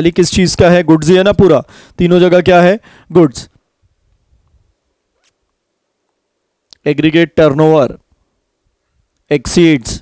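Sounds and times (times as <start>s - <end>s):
man speaking: 0.0s - 3.6s, 6.8s - 8.0s, 9.3s - 10.0s.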